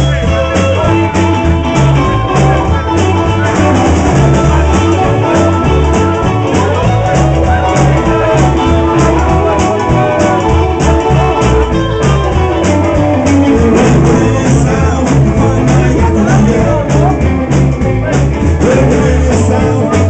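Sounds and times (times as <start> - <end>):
bass guitar: 0.0 - 20.0
electric guitars: 0.0 - 20.0
steady drum beat: 0.0 - 20.0.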